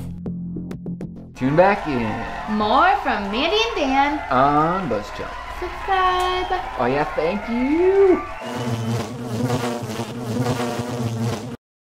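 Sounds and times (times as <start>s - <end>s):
buzzing fly: 8.4s - 11.6s.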